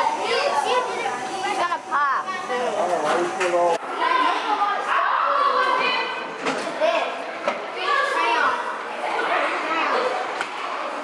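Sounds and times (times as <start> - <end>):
children chattering: 0.0 - 11.0.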